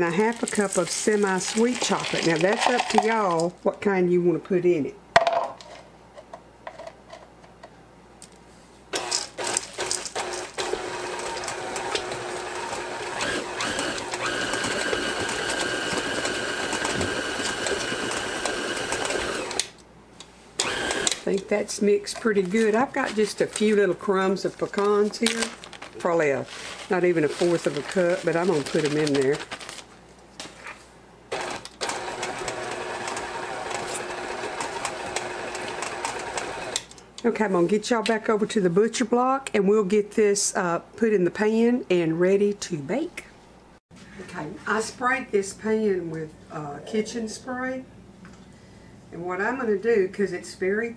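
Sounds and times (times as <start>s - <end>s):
stand mixer running: 9.0s - 19.6s, 20.6s - 21.1s, 31.3s - 36.8s
high-pitched mixer whine: 10.2s - 19.6s.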